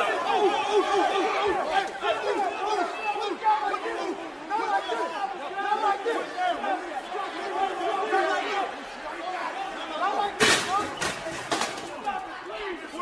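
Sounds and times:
men's overlapping chatter: 0.0s - 13.0s.

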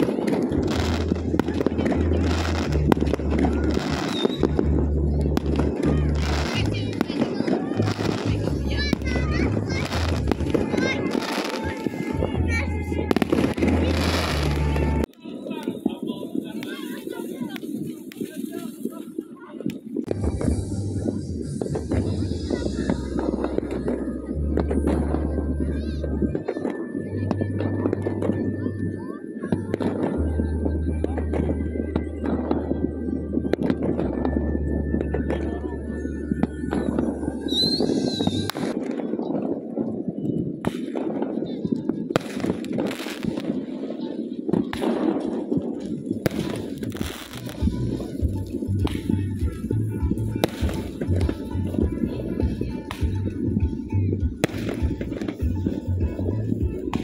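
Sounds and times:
background music: 0.0s - 15.1s, 20.1s - 38.8s, 44.8s - 57.0s
fireworks bangs and crackles: 0.0s - 57.0s
people's voices: 0.0s - 57.0s
high squeal: 36.0s - 38.5s.

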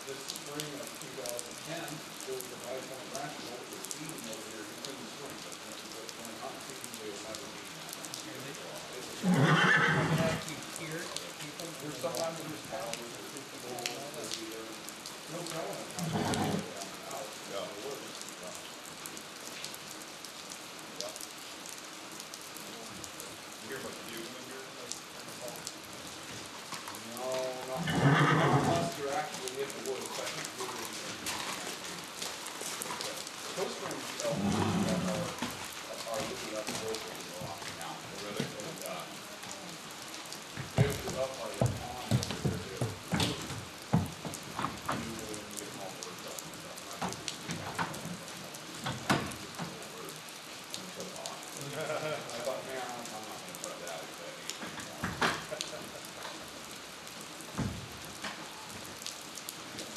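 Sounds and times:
steady rain: 0.0s - 59.9s
horse whinnying: 9.2s - 10.5s, 16.0s - 16.7s, 27.8s - 29.0s, 34.3s - 35.4s.

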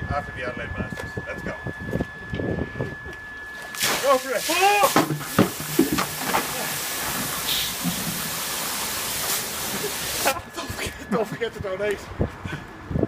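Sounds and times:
water splashing onto concrete: 3.7s - 10.4s
steady hiss: 3.8s - 10.4s
buckets knocking: 4.9s - 9.0s.

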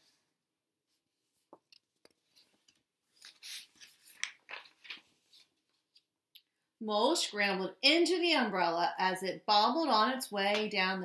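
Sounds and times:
paper pages rustling: 1.4s - 6.1s.

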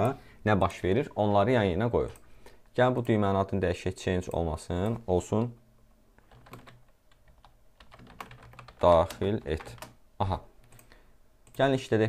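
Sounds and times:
keyboard keys clicking: 6.2s - 10.0s.

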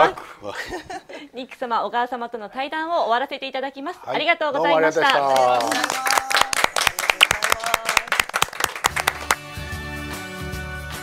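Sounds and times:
people clapping: 4.8s - 9.6s
music: 8.5s - 11.0s.

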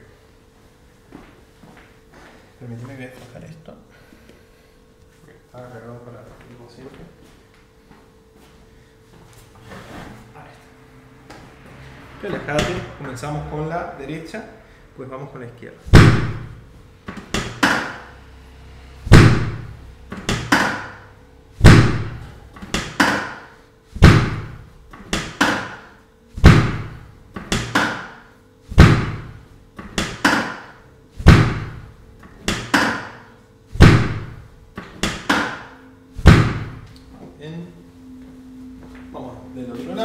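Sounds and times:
drop table thuds: 15.9s - 18.0s, 19.1s - 21.0s, 21.6s - 23.4s, 24.0s - 25.8s, 26.4s - 31.8s, 33.8s - 36.9s.

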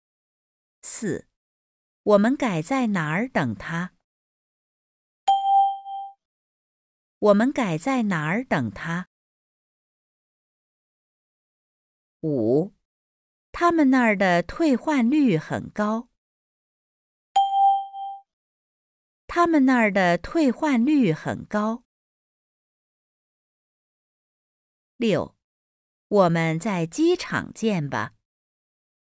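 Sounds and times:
person reading a sentence: 0.8s - 1.3s, 2.1s - 4.0s, 7.2s - 9.1s, 13.6s - 16.2s, 19.3s - 21.9s, 26.2s - 28.2s
bell-like ding: 5.3s - 6.2s, 17.4s - 18.2s.

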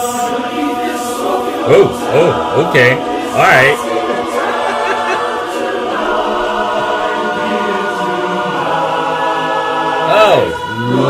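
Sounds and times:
men's barbershop chorus singing: 0.0s - 11.0s.

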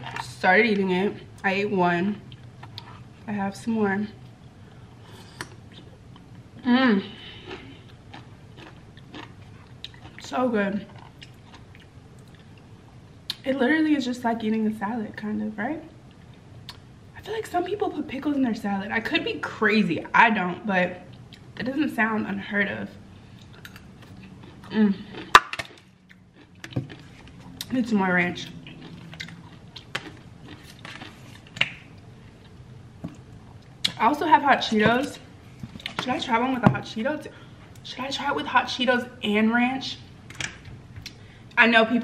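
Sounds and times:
faint chewing: 2.3s - 3.2s, 7.2s - 12.7s, 23.3s - 27.8s, 28.4s - 34.0s.

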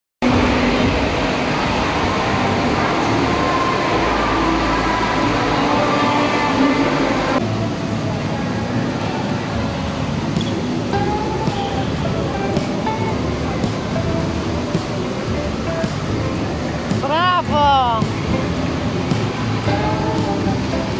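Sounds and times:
faint music: 0.2s - 20.9s
many people's voices: 0.2s - 20.9s
water splashing: 0.2s - 20.9s.

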